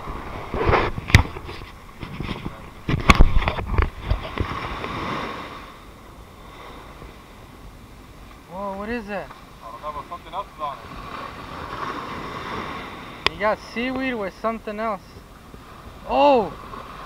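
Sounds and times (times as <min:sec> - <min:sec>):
faint wind and surf hiss: 0:00.0 - 0:17.0
camera handling knocks and rustles: 0:00.6 - 0:04.5.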